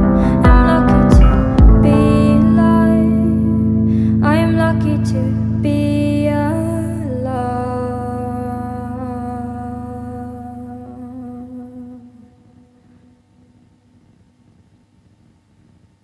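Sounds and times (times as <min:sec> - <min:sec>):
low keyboard chord: 0:00.0 - 0:13.6.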